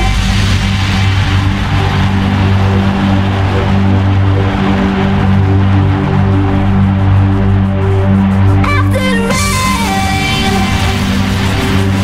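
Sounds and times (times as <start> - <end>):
hardcore dance music: 0.0 - 12.0.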